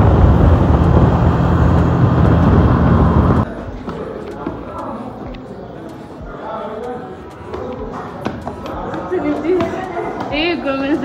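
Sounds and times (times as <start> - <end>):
motorcycle engine running: 0.0 - 3.5
wind rushing over microphone: 0.0 - 3.5.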